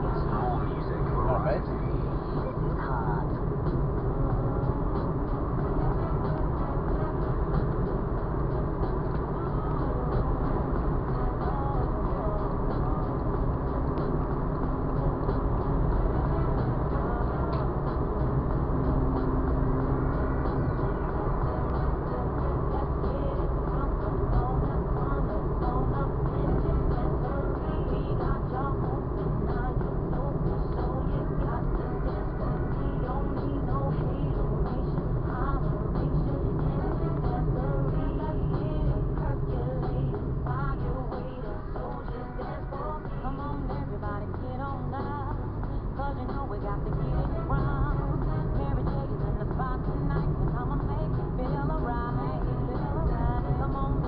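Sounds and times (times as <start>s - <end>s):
car radio music: 0.0s - 54.0s
car road and engine noise: 0.0s - 54.0s.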